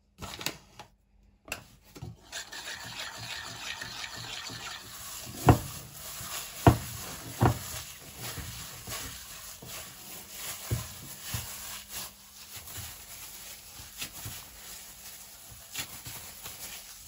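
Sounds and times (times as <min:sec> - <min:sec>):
gloved hand kneading dough in pot: 0:04.3 - 0:17.0.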